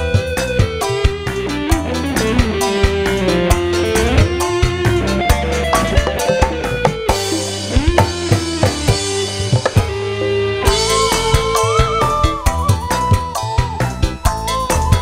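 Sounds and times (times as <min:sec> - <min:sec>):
bending melody line: 0:00.0 - 0:15.0
drums: 0:00.0 - 0:15.0
electric guitar: 0:00.0 - 0:15.0.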